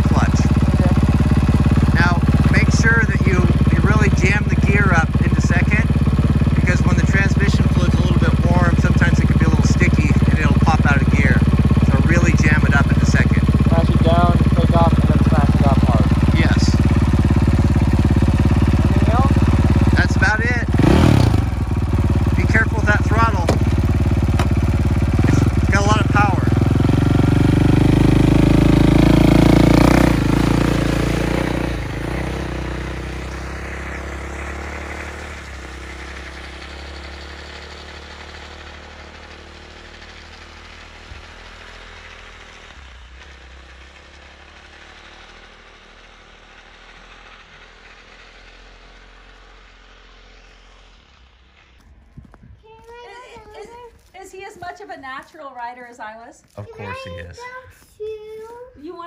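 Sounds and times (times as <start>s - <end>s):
dirt bike engine idling and revving: 0.0s - 58.0s.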